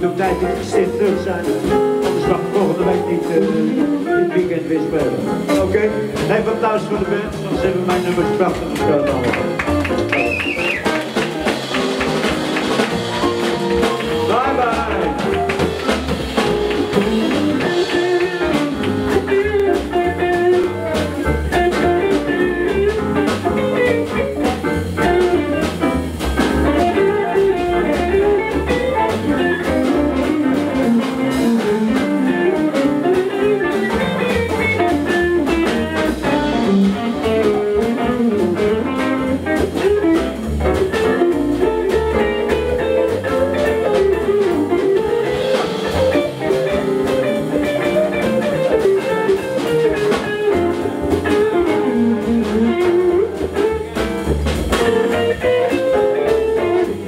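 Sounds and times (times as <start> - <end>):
drums: 0.0 - 57.0
plucked double bass: 0.0 - 57.0
electric guitar lead line: 8.8 - 53.9.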